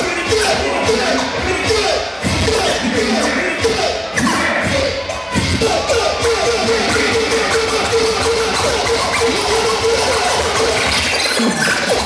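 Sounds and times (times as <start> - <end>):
music beat: 0.0 - 12.0
record scratching: 0.1 - 12.0.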